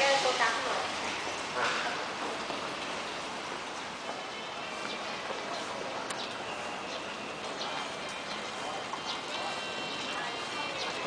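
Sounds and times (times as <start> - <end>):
steady hissing noise: 0.0 - 10.7.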